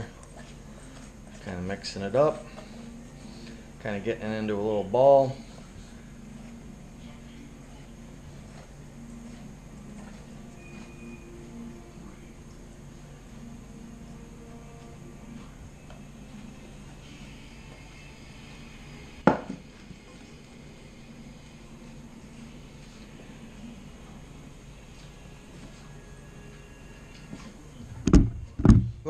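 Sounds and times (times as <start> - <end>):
faint low hum: 0.0 - 29.0.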